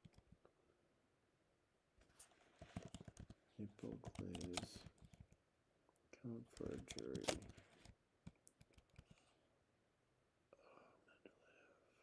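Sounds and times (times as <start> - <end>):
man whispering: 10.5 - 12.0.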